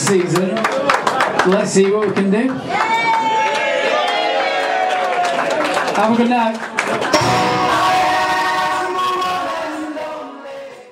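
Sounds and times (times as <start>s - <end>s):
crowd singing together: 7.1s - 10.9s.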